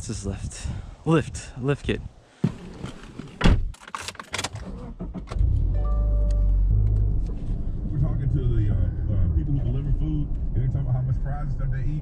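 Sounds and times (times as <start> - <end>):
car door: 2.4 - 5.6
car engine starting and rumbling: 2.6 - 12.0.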